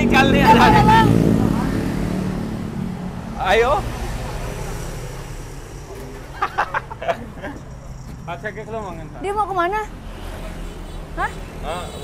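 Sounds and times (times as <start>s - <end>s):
motorcycle passing: 0.0s - 12.0s
road traffic: 0.0s - 12.0s.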